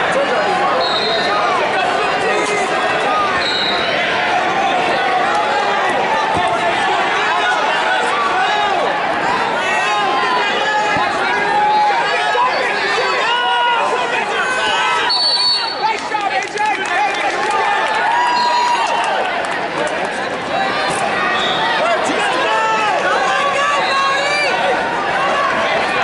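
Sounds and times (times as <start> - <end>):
people shouting and calling out: 0.0 - 19.4, 20.3 - 26.0
high whistle: 0.8 - 1.3, 3.4 - 3.9, 15.0 - 15.8.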